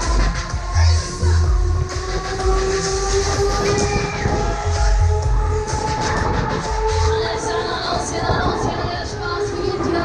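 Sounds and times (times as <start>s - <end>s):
pulsing bass beat: 0.0s - 8.7s
loud music with held chord: 0.0s - 9.9s.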